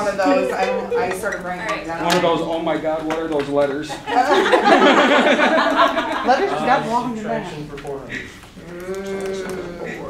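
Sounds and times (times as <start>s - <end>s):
people talking: 0.0s - 10.0s
voice holding a long vowel: 8.6s - 10.0s.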